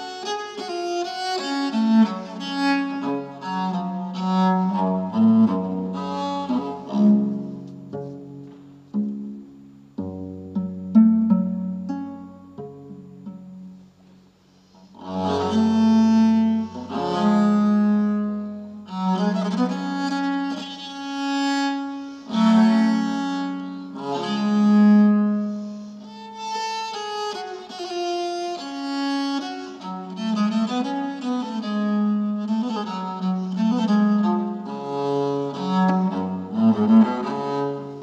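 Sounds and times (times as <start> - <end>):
bowed viola da gamba melody: 0.0 - 13.8, 14.7 - 38.0.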